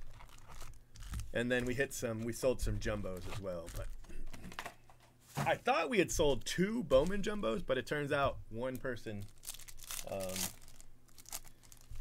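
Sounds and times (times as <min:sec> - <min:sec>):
foil wrapper crinkling and tearing: 0:00.0 - 0:01.4, 0:03.0 - 0:04.1, 0:09.1 - 0:12.0.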